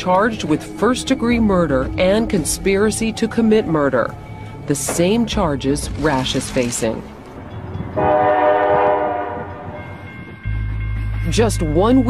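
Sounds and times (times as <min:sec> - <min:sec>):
train horn chord: 0:07.9 - 0:10.6.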